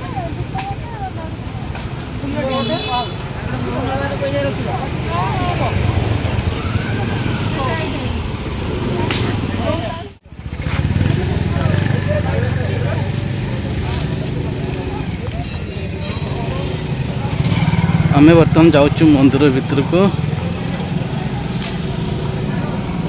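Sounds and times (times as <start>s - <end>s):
low rumble of road traffic: 0.0s - 23.0s
voices of passers-by: 0.0s - 23.0s.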